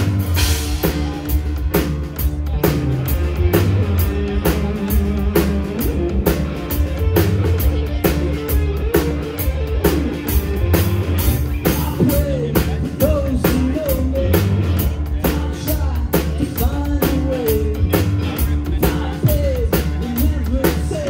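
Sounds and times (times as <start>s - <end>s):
drum kit steady beat: 0.0s - 21.0s
electric guitars: 0.0s - 21.0s
keyboard: 0.0s - 21.0s.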